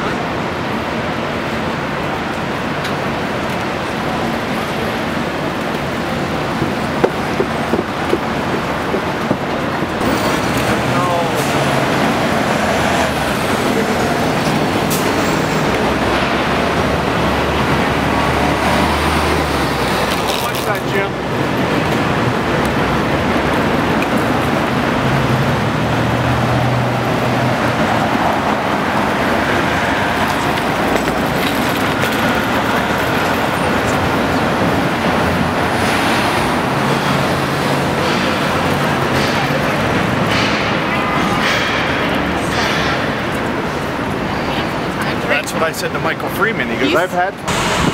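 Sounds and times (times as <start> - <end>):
bus engine humming: 0.0 - 47.9
city street traffic: 0.0 - 47.9
indistinct voices: 3.8 - 22.9.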